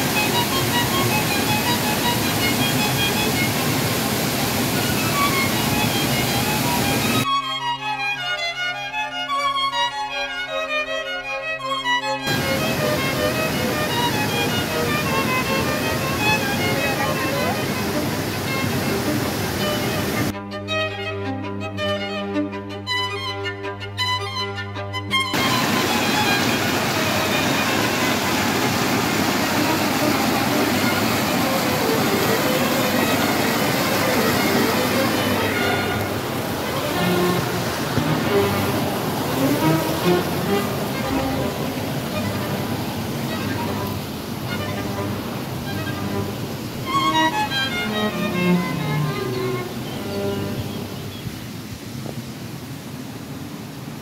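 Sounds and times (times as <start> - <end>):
stream rushing over rocks: 0.0 - 7.3, 12.2 - 20.3, 25.3 - 54.0
violin music: 0.0 - 51.5.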